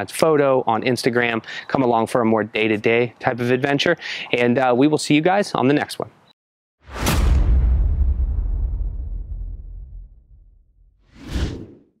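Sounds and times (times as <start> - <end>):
whoosh effect: 6.9 - 11.8
deep low rumble: 7.0 - 11.0.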